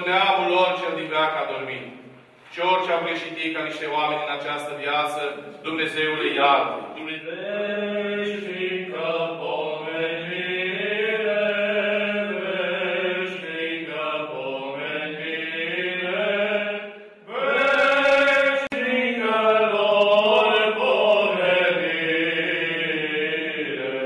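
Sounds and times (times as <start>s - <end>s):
voices chanting a hymn: 0.0s - 24.0s.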